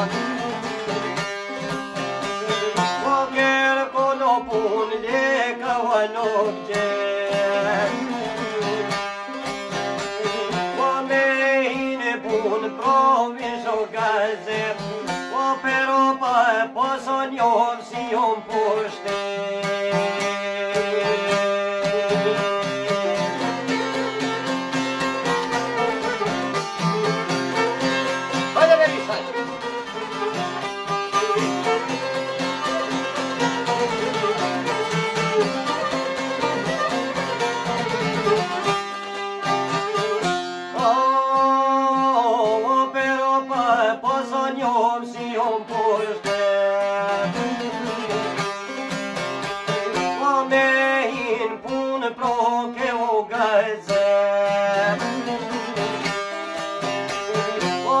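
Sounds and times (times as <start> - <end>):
violin melody: 0.0 - 3.2, 18.6 - 40.9, 54.6 - 58.0
plucked lutes: 0.0 - 58.0.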